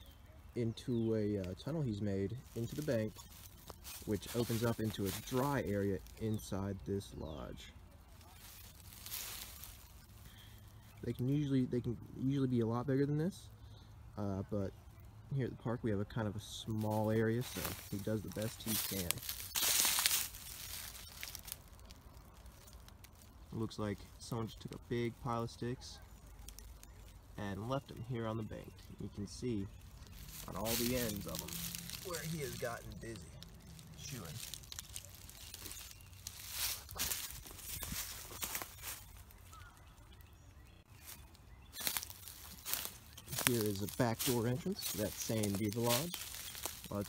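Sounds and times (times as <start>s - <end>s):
dry leaves and twigs crackling: 0.0s - 13.4s, 15.9s - 47.0s.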